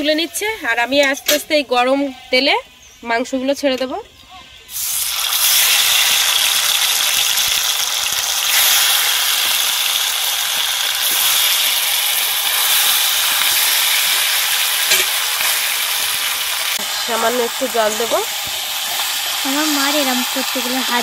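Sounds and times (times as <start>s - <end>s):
chicken sizzling in hot oil: 4.7s - 21.0s.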